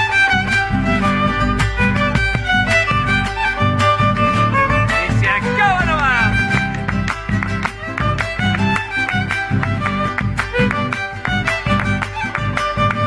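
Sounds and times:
folk music led by violin: 0.0s - 13.0s
rhythmic accompaniment: 0.0s - 13.0s.

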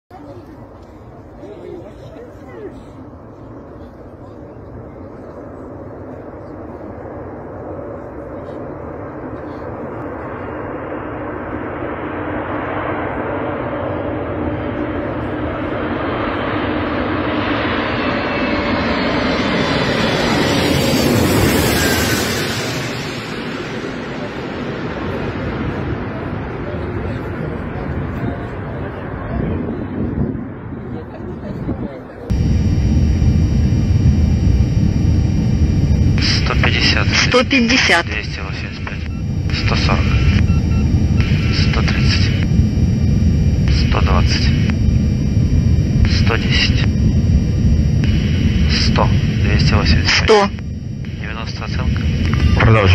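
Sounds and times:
jet engines passing: 0.1s - 52.9s.

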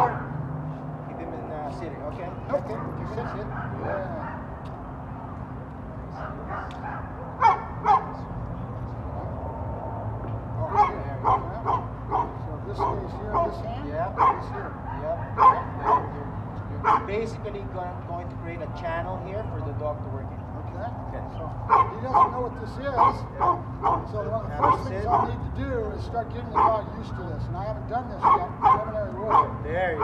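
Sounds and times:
dog barking: 0.0s - 0.4s, 2.5s - 4.6s, 6.2s - 8.2s, 10.6s - 16.2s, 16.8s - 17.2s, 21.7s - 25.4s, 26.5s - 27.3s, 28.2s - 30.0s.

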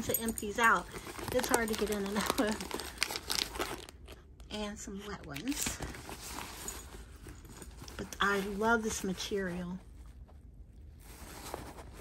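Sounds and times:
handbag lining rustling: 0.0s - 4.1s, 5.3s - 9.7s, 11.0s - 12.0s
low steady background hum: 0.0s - 12.0s.

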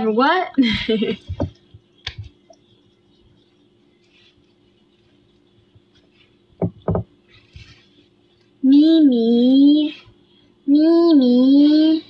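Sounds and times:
short knocks: 6.6s - 7.2s.

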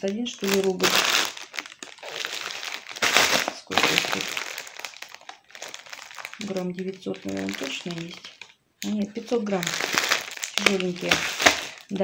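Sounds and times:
paper bag of pasta crinkling: 0.0s - 12.0s.

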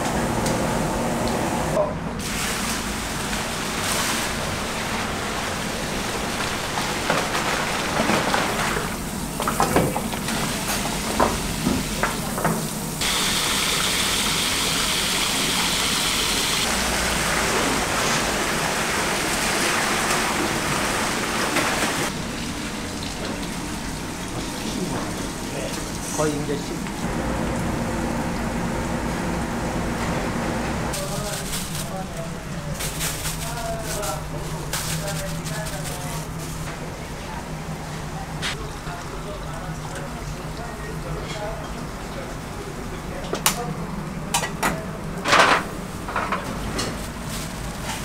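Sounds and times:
liquid sloshing and splashing: 2.2s - 9.0s
water rushing: 13.0s - 29.8s.

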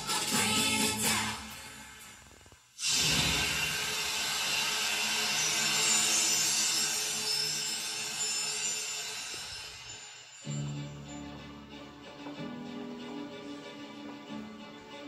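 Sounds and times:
loud rushing hissing burst: 2.8s - 10.3s.

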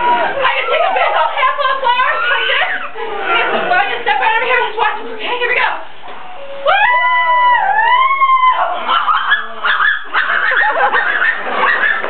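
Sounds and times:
high-pitched howling cry: 0.0s - 3.8s, 6.2s - 12.0s.

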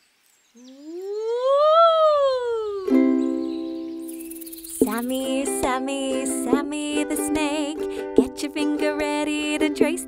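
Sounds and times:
woman singing sliding ooh: 0.6s - 3.4s, 4.8s - 10.0s
ukulele chord strummed: 2.8s - 10.0s.

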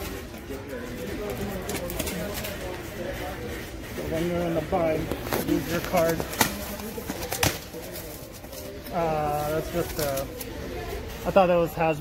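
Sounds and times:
cardboard handling: 5.1s - 10.5s.

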